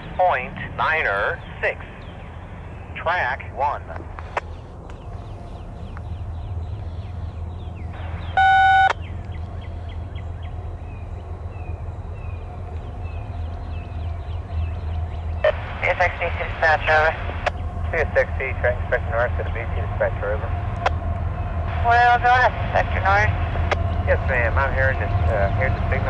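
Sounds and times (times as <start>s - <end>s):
steady low rumble: 0.0s - 26.0s
loud electronic beep: 8.3s - 9.0s.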